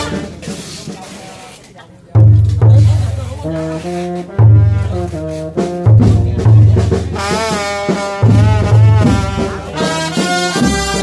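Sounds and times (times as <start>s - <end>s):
brass band note: 0.0s - 0.6s, 2.7s - 11.0s
faint voices talking: 0.0s - 11.0s.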